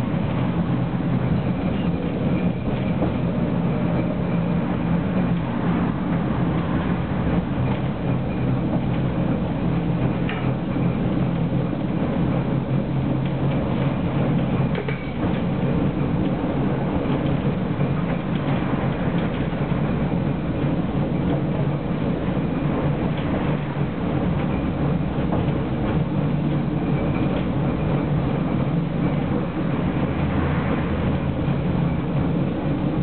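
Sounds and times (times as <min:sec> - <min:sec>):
tram motors and wheels rumbling: 0:00.0 - 0:33.0.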